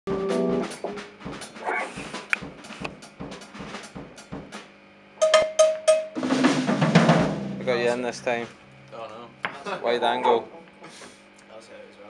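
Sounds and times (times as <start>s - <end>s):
drum kit warm-up strikes: 0.1s - 9.4s.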